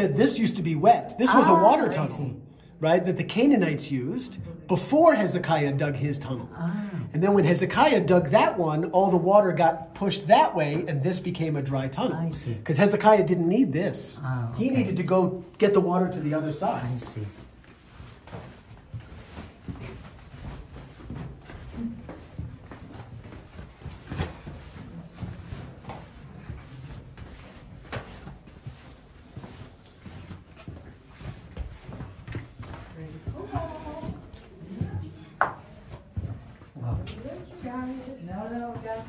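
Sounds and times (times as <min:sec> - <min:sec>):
footsteps on stone floor: 0:15.0 - 0:39.0
knocks and rubbing on walls: 0:30.4 - 0:39.0.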